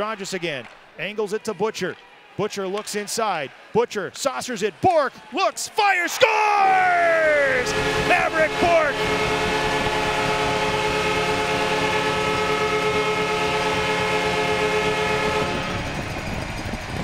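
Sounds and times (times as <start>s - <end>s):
crowd cheering: 0.0s - 15.1s
goal horn blast: 6.6s - 15.8s.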